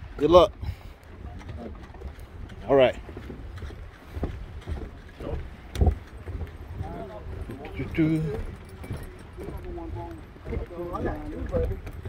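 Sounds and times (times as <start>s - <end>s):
footsteps on wooden planks: 0.0s - 12.0s
wind rumble on microphone: 0.0s - 12.0s.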